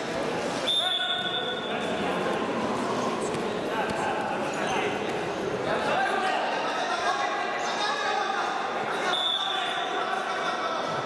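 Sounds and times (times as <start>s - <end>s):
people's voices overlapping: 0.0s - 11.0s.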